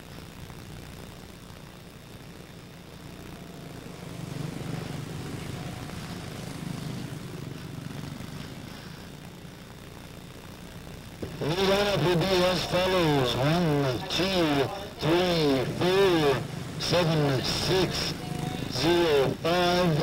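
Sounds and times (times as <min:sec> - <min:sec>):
race car engines buzzing: 0:02.8 - 0:09.2, 0:11.2 - 0:20.0.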